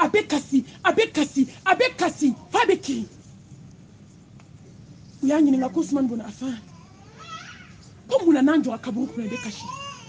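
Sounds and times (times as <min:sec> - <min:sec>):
person speaking: 0:00.0 - 0:03.4, 0:05.2 - 0:06.8.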